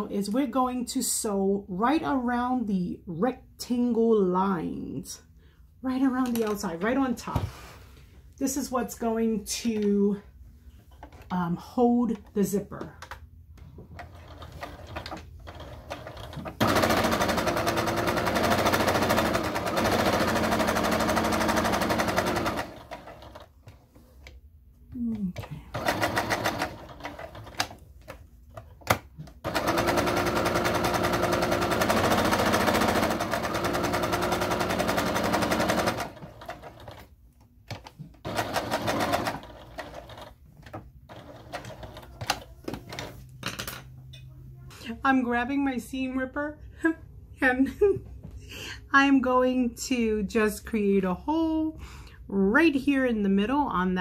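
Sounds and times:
sewing machine stitching: 0:14.0 - 0:23.5, 0:25.7 - 0:27.8, 0:29.3 - 0:37.1, 0:37.8 - 0:43.2.

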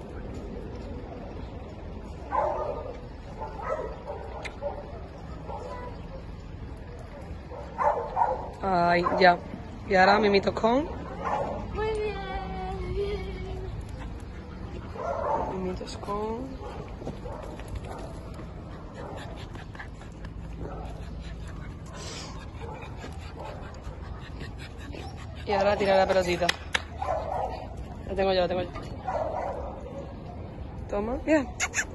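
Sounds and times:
low outdoor background: 0:00.0 - 0:31.9
dog panting and whimpering: 0:18.5 - 0:26.9
dog yipping: 0:31.6 - 0:31.9.

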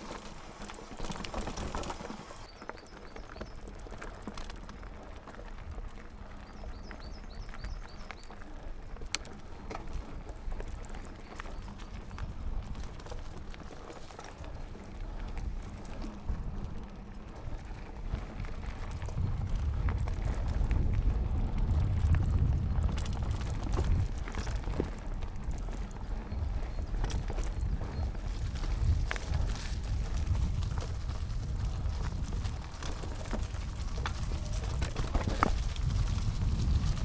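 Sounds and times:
bike clicks and rattles: 0:00.0 - 0:37.0
bike tyre rumble on dirt: 0:00.0 - 0:37.0.

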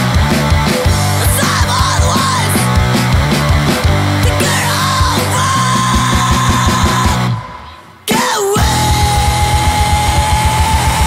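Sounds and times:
fast driving drum beat: 0:00.0 - 0:07.4, 0:08.1 - 0:11.0
distorted band playing: 0:00.0 - 0:11.0.

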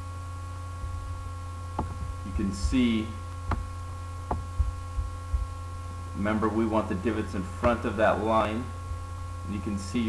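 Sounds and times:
electrical mains hum: 0:00.0 - 0:10.0
soft low thumps: 0:00.6 - 0:09.5.

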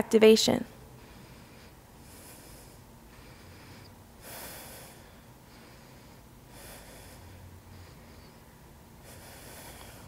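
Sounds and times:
person breathing close to microphone: 0:00.9 - 0:10.0.

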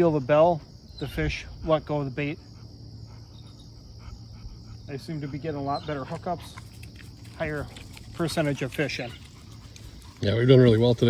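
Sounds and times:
insect chorus trilling: 0:00.0 - 0:11.0
low steady hum: 0:00.0 - 0:11.0.

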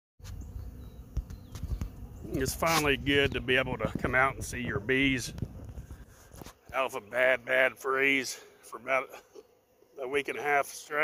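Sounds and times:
honeybees buzzing: 0:00.2 - 0:11.0.

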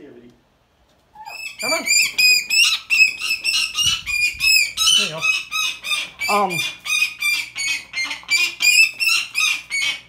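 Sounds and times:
bird of prey chattering calls: 0:01.2 - 0:10.0.

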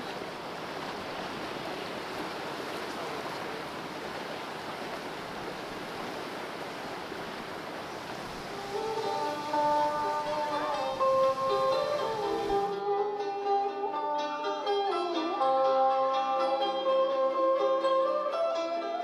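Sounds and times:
sea waves washing against rocks: 0:00.0 - 0:12.7
plucked string music: 0:08.6 - 0:19.0.

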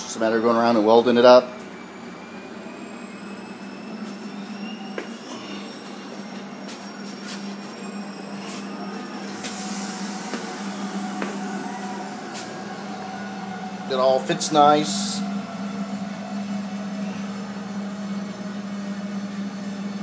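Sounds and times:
high whining tones: 0:00.0 - 0:20.0
low machine hum: 0:00.0 - 0:20.0.

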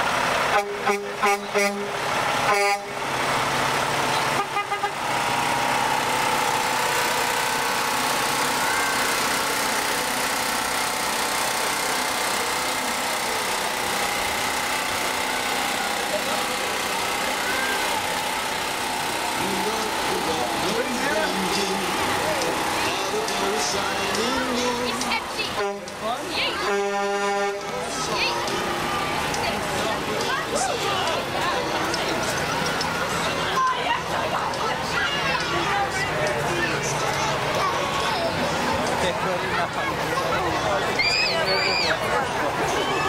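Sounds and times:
road noise roar: 0:00.0 - 0:43.0
truck engine running: 0:00.0 - 0:43.0
people calling out: 0:19.3 - 0:38.6, 0:39.2 - 0:43.0.

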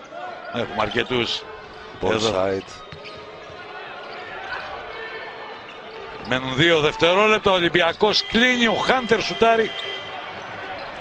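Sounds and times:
crowd noise: 0:00.0 - 0:11.0
commentator's voice: 0:06.3 - 0:10.0.

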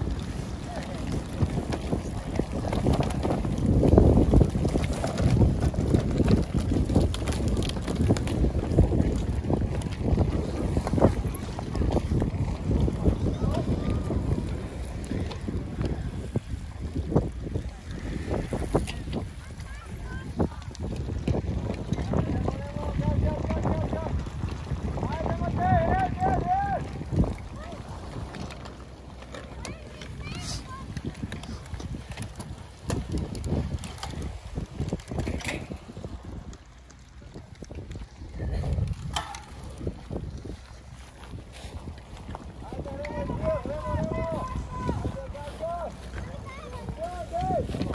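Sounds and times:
wind buffeting microphone: 0:00.0 - 0:47.9.

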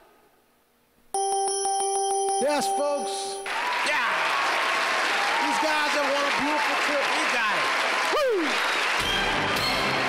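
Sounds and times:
bell ringing rapidly: 0:01.2 - 0:03.5.

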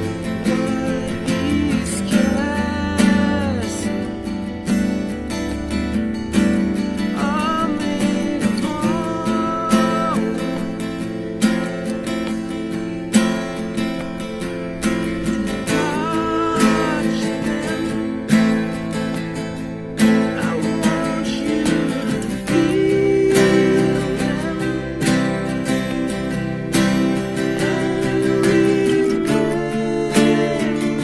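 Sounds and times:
acoustic guitars strummed hard: 0:00.0 - 0:31.0.

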